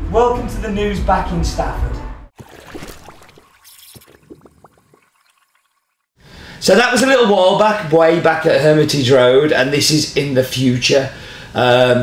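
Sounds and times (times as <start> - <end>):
liquid drips and plops: 2.4 - 6.2.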